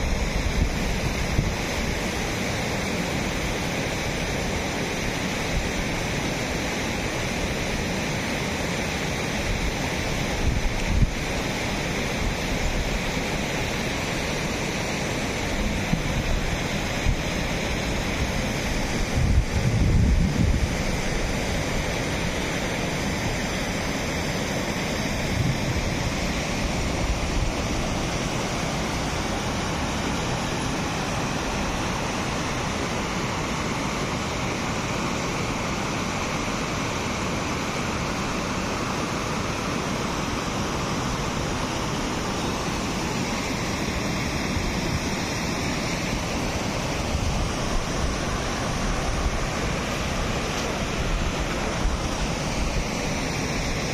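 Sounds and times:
wind on microphone: 0.0s - 1.9s, 9.5s - 11.3s, 18.0s - 22.4s, 25.1s - 27.9s
water rushing over weir: 0.0s - 53.9s.

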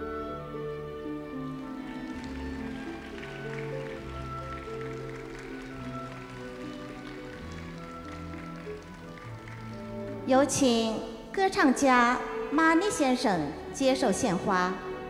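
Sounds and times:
orchestra playing soft music: 0.0s - 15.0s.

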